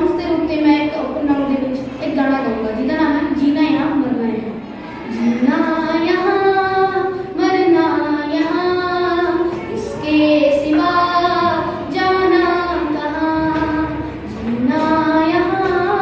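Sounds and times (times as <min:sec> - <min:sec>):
boy singing: 0:05.2 - 0:16.0.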